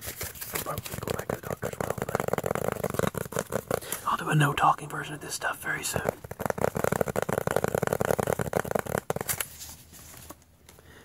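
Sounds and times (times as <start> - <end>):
fingernails tapping cardboard: 0.7 - 4.1, 6.0 - 9.5.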